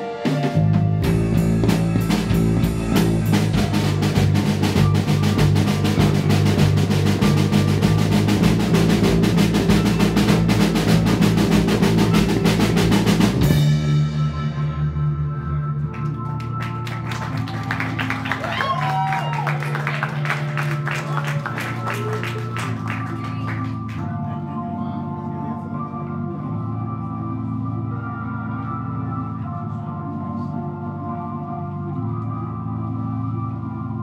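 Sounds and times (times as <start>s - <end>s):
drum kit with snare and cymbals: 0.0s - 15.2s
electric bass: 0.0s - 34.0s
electric keyboard: 0.0s - 34.0s.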